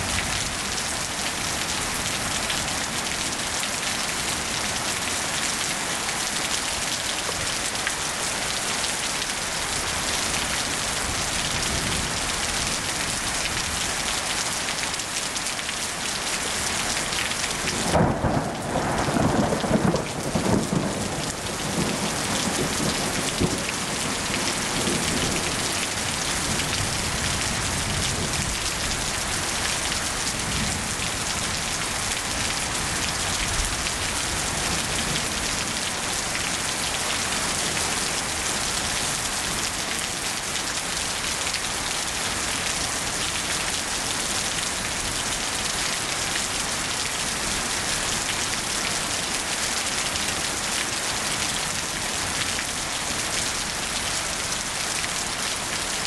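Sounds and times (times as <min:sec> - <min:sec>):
steady rain: 0:00.0 - 0:56.0
thunder rumbling: 0:17.8 - 0:25.2.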